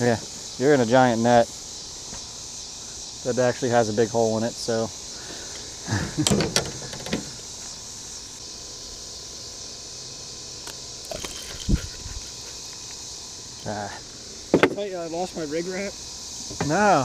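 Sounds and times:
insects chorus: 0.0s - 17.0s.

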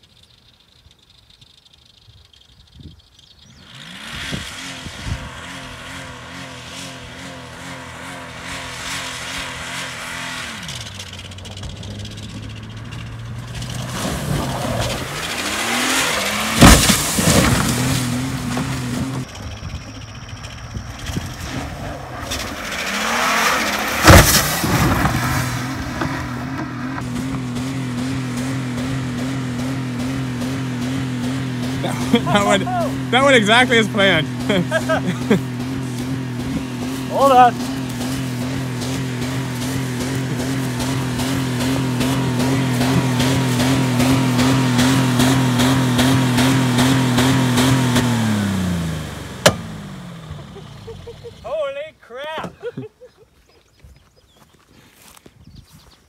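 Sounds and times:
car engine revving hard: 3.6s - 20.2s, 20.8s - 51.4s
heavy car crash: 11.6s - 19.2s, 22.2s - 26.8s.

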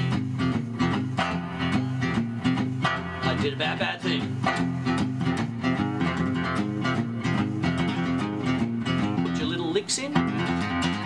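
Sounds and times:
acoustic guitar blues lick: 0.0s - 11.0s.

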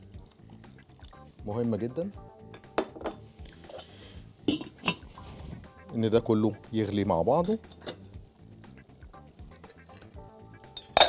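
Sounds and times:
metal pots and utensils clinking: 2.5s - 5.2s, 6.8s - 8.2s, 9.5s - 11.0s.

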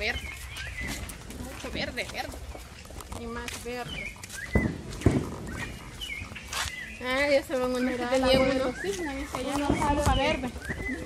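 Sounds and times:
bird chirps: 0.0s - 2.0s, 3.4s - 11.0s.

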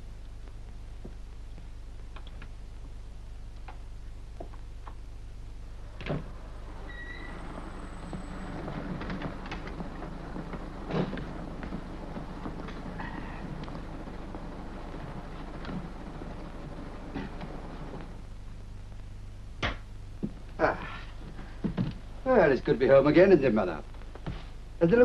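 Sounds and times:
film soundtrack hum: 0.0s - 25.0s.

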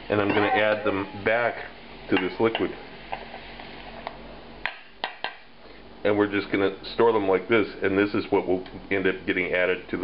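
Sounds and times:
faint hiss: 0.0s - 10.0s
spatula tapping steel bowl: 2.2s - 2.7s.

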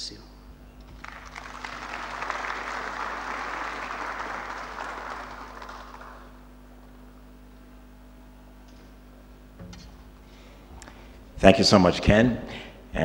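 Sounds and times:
audience applauding: 0.9s - 6.5s.

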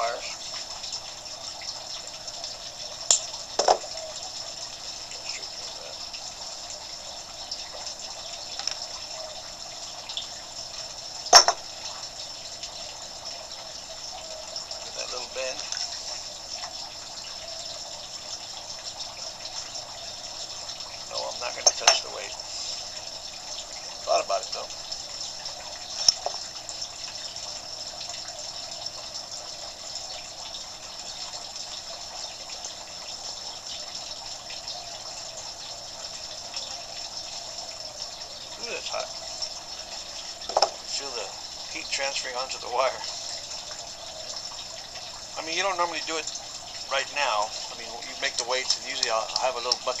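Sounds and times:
running water: 0.0s - 50.0s.

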